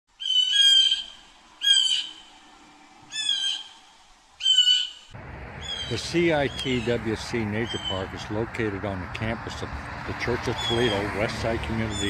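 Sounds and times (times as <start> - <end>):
bird calling loudly: 0.1 - 2.4, 3.1 - 8.4, 10.5 - 12.0.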